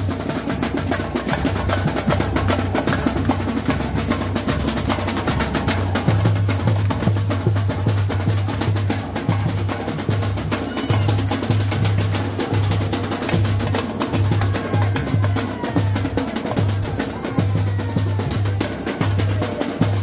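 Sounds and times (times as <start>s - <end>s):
samba drumming: 0.0s - 20.0s.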